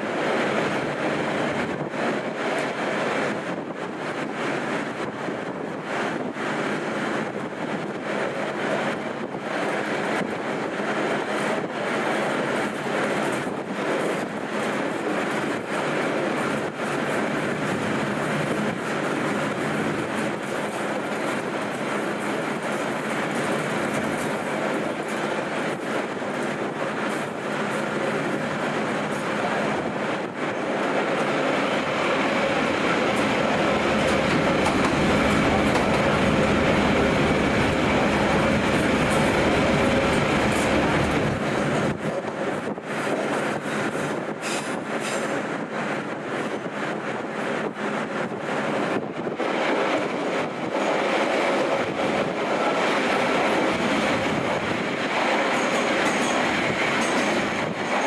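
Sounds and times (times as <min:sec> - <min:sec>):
train wheels rumbling on rails: 0:00.0 - 0:58.0
clickety-clack of rail joints: 0:00.1 - 0:58.0.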